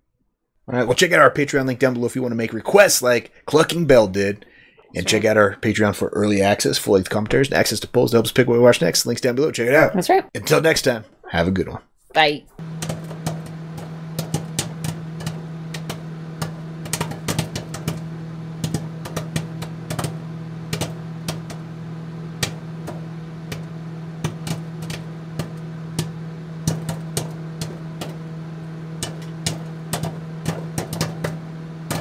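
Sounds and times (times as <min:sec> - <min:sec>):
steady low hum: 0:12.5 - 0:32.0.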